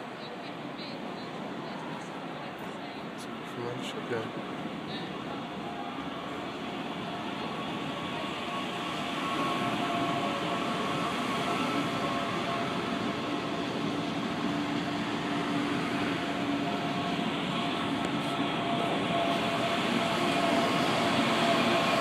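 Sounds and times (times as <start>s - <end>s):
train wheels rumbling on rail: 4.2s - 22.0s.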